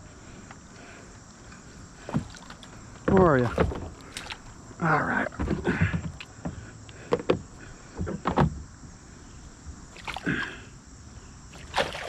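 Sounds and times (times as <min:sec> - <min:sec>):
fish splashing in a net: 0:11.5 - 0:12.0.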